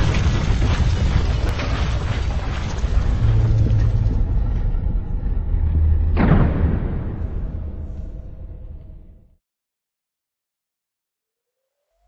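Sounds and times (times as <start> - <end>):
deep boom with low drone: 0.0 - 9.4.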